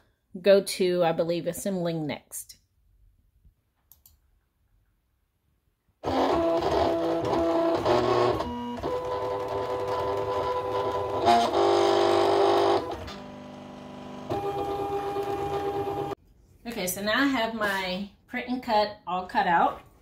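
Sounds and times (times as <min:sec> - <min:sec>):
cutting machine motors whining: 0:06.0 - 0:16.2.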